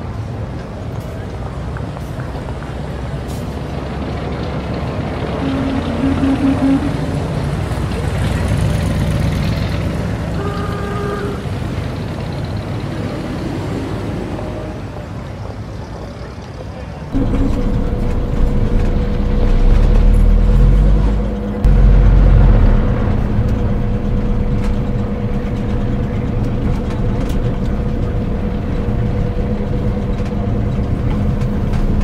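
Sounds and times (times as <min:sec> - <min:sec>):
vehicle engines running: 0:00.0 - 0:32.0
car horn toot: 0:05.4 - 0:07.2, 0:10.3 - 0:11.5.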